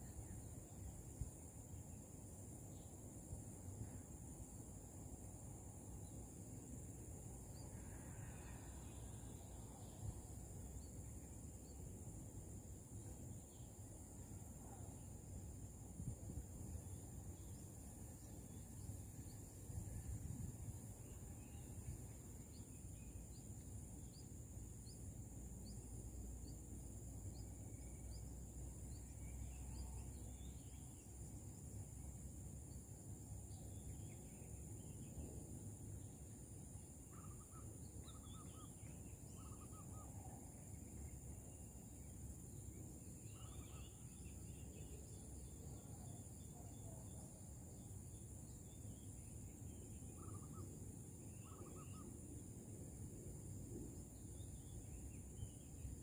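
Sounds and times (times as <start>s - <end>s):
bird calls: 50.2s - 52.2s.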